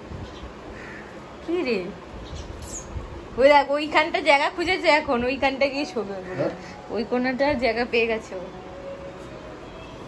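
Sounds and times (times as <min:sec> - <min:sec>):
woman speaking: 0:01.4 - 0:02.0, 0:03.4 - 0:08.6.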